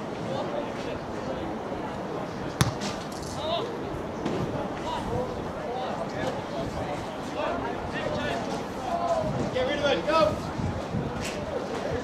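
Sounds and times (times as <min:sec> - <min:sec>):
sharp thud: 0:02.6 - 0:03.0.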